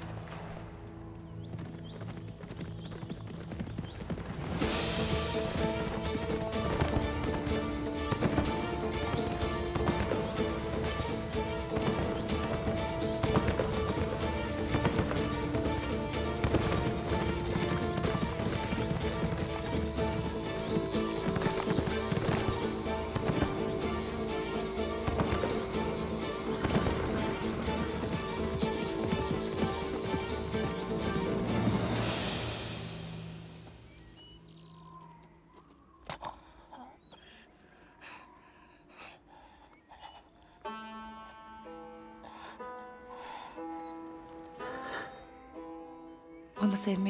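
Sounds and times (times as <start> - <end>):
horse hooves clip-clopping: 0.0 - 36.2
background music of held notes: 4.5 - 33.8, 40.7 - 47.0.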